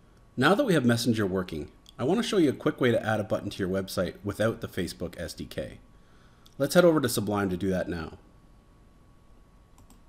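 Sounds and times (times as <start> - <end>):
faint computer clicks: 9.7 - 10.0.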